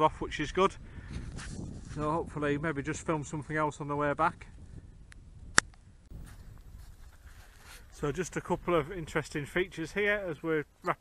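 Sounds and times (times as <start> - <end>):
wind rumble on microphone: 0.0 - 10.4.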